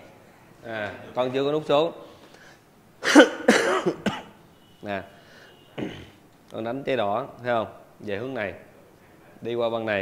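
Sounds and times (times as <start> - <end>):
man clearing throat: 3.0 - 4.4, 5.8 - 6.2
man coughing: 3.0 - 4.4, 5.8 - 6.2.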